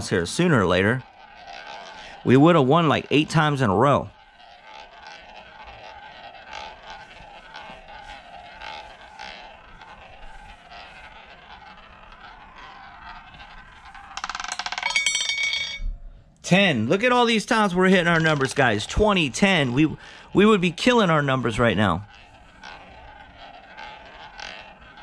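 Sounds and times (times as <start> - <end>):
ball rattling into pocket: 0.0 - 16.0, 17.0 - 25.0
ball rolling in roulette wheel: 0.0 - 25.0.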